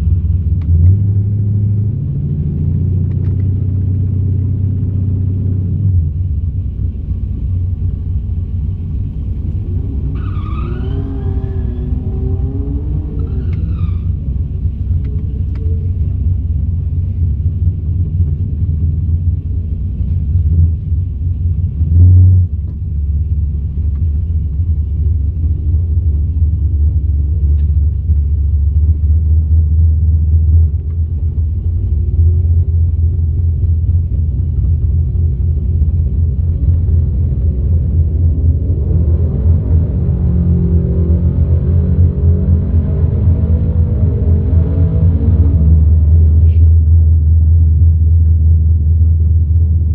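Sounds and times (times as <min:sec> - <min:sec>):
car engine idling: 0:00.0 - 0:42.5, 0:45.6 - 0:49.9.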